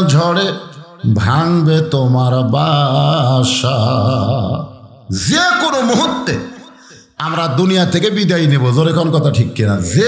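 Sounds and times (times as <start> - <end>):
man chanting: 0.0 - 10.0.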